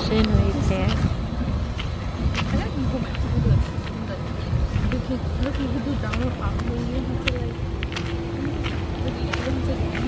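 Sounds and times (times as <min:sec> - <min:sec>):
constant hum: 0:00.0 - 0:10.0
low indistinct talking: 0:00.0 - 0:10.0.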